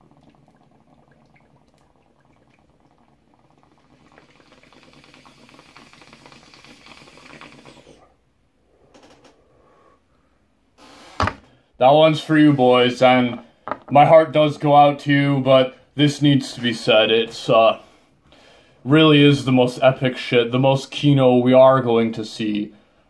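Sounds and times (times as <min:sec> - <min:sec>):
person inhaling through nose: 0:04.2 - 0:08.1, 0:09.4 - 0:11.2, 0:17.8 - 0:18.8.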